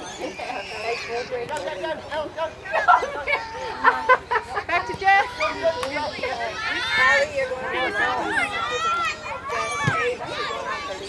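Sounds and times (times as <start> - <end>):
people calling out outdoors: 0.0 - 11.0.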